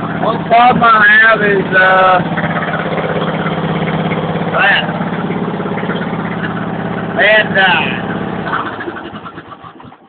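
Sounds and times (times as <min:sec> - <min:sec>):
lawn mower engine shutting down: 0:00.0 - 0:10.0.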